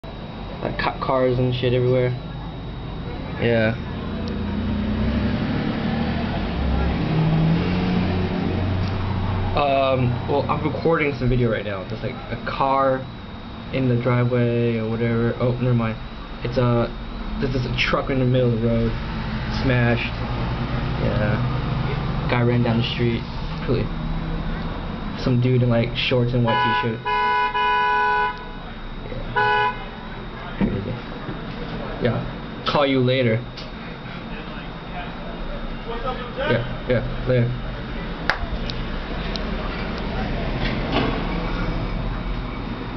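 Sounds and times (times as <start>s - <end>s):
car engine running: 0.0s - 42.9s
car horn honking: 26.4s - 28.7s, 29.3s - 30.2s.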